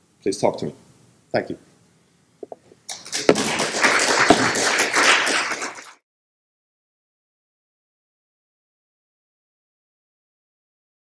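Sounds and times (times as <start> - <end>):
audience applauding: 2.9 - 6.0.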